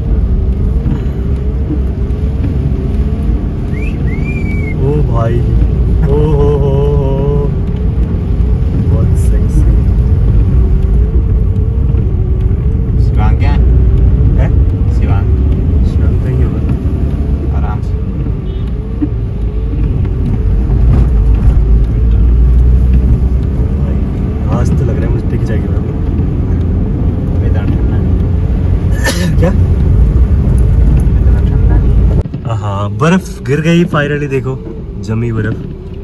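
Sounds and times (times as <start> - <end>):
car engine and tyre rumble: 0.0 - 36.0.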